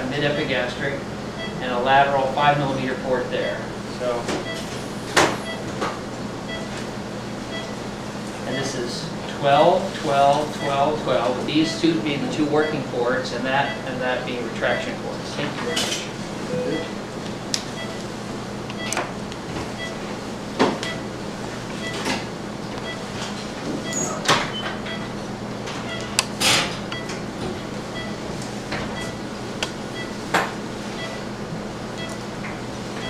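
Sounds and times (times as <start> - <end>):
surgical equipment hum: 0.0 - 33.0.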